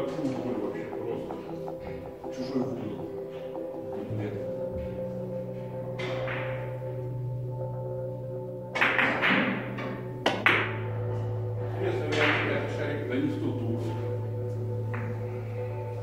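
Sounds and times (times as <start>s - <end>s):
background music: 0.0s - 16.0s
billiard balls clacking: 4.8s - 7.2s, 8.7s - 11.3s, 12.0s - 12.8s
cue tip striking ball: 6.0s - 6.9s, 8.7s - 11.2s, 12.1s - 12.8s, 14.9s - 15.2s.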